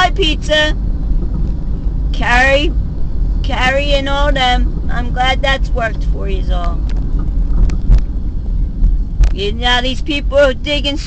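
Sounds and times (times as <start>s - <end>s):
road and engine rumble in car: 0.0s - 11.0s.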